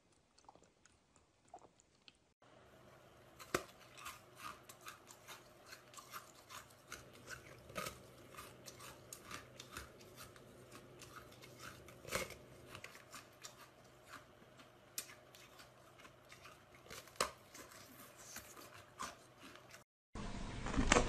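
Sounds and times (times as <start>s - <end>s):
ice being bitten and chewed: 0.0s - 2.2s, 3.2s - 19.8s.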